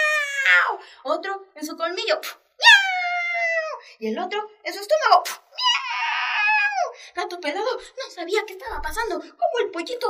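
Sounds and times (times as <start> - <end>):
person imitating cat meow: 2.6 - 3.8.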